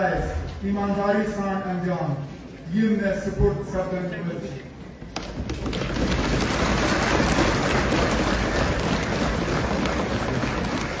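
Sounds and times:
crowd applause: 5.4s - 11.0s.

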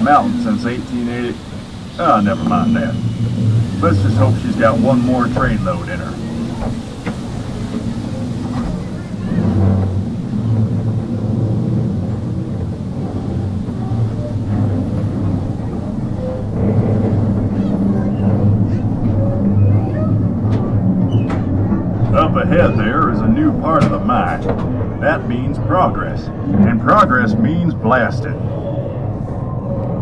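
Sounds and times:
ride cars rumbling along track: 0.0s - 30.0s.

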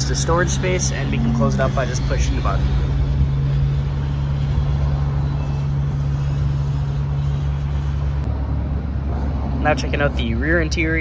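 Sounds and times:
even rumble: 0.0s - 4.0s
steady low hum: 0.0s - 9.0s.

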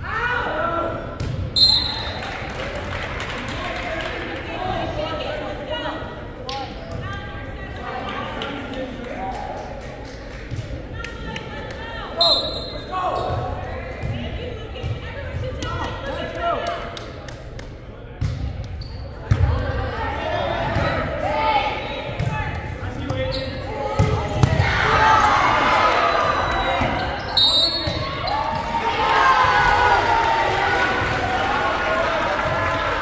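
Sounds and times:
people calling out and chattering: 3.6s - 33.0s
volleyballs hit and bouncing: 22.2s - 25.0s.

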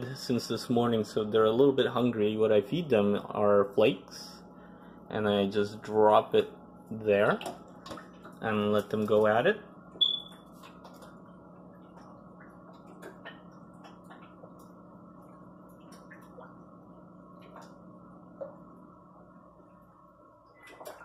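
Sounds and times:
aquarium equipment humming: 0.0s - 21.0s.

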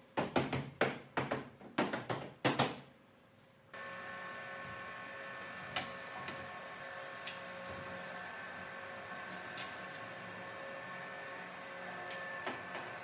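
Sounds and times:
steady machine hum: 3.8s - 13.0s.

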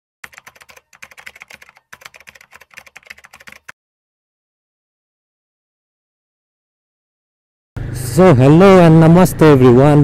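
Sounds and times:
fast typing key clicks: 0.2s - 3.8s.

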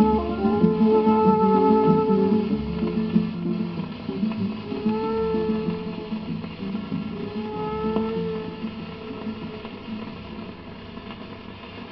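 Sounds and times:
last note of song: 0.0s - 10.8s
record crackles and clicks: 0.0s - 11.9s
record surface hiss: 0.0s - 11.9s.

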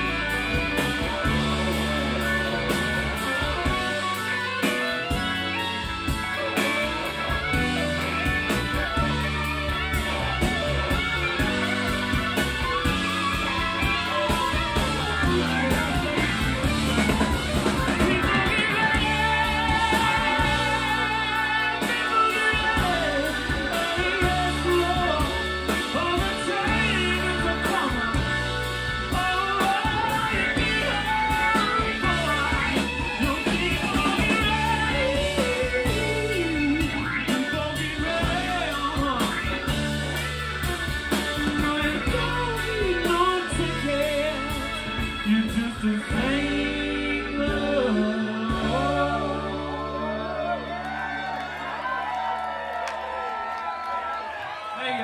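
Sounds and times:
low bass line: 0.0s - 52.0s
drum kit: 0.0s - 54.5s
electric guitars: 0.0s - 55.0s.

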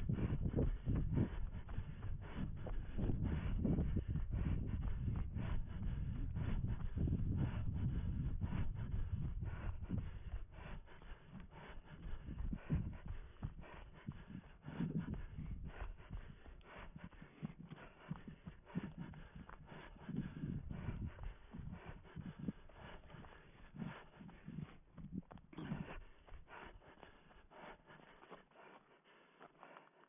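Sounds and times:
low rumble: 0.0s - 13.6s
running footsteps on dry leaves: 23.0s - 30.0s.

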